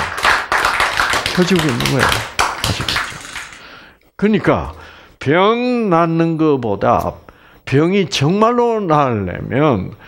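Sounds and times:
sharp taps or hand claps: 0.0 - 3.7.

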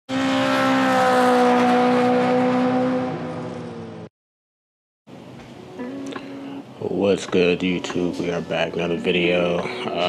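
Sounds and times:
car engine revving high: 0.1 - 4.1.

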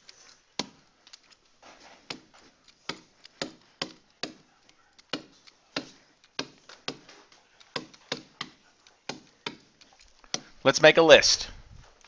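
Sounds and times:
stylus tapping tablet screen: 0.0 - 10.8.

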